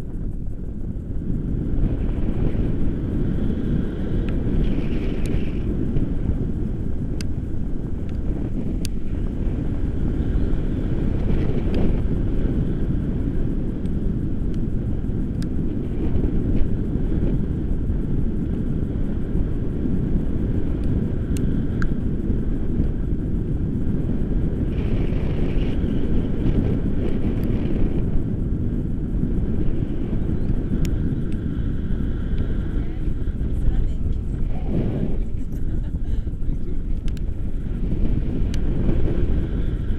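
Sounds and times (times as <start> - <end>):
wind rushing over microphone: 0.0 - 39.9.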